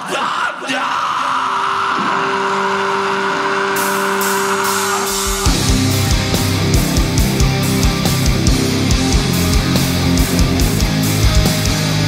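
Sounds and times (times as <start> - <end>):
crowd noise: 2.2 - 12.0
droning guitar chord: 4.6 - 12.0.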